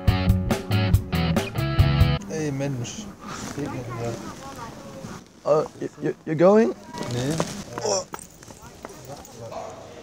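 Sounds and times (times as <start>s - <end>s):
faint voices: 2.2s - 10.0s.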